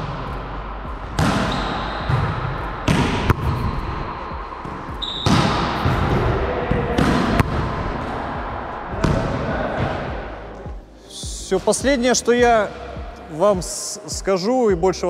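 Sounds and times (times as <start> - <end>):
volleyball smacks echoing: 1.1 - 4.1, 4.7 - 8.3, 9.0 - 10.1.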